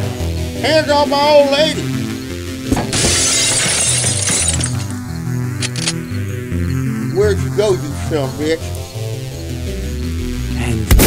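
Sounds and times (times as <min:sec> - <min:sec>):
background music: 0:00.0 - 0:11.0
cartoon glass shattering: 0:02.9 - 0:04.9.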